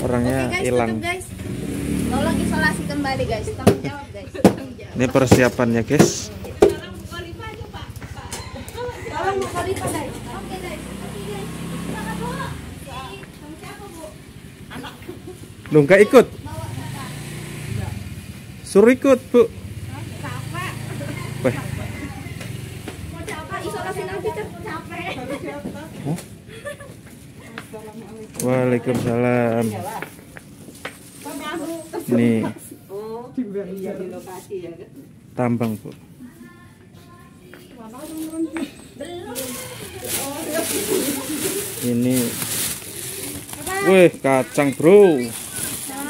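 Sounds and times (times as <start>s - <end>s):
vehicle engine idling: 0.0s - 26.5s.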